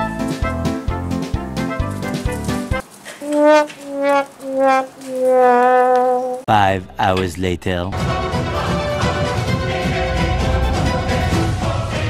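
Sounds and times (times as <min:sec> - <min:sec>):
sad trombone sound effect: 0:03.2 - 0:06.4.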